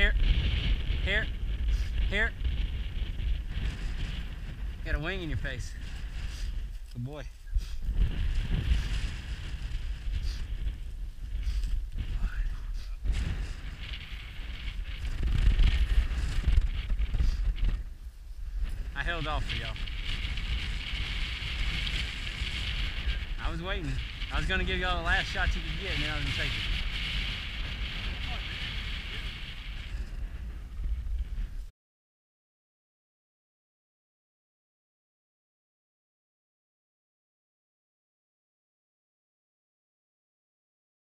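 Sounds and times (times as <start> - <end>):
wind buffeting microphone: 0.0 - 31.7.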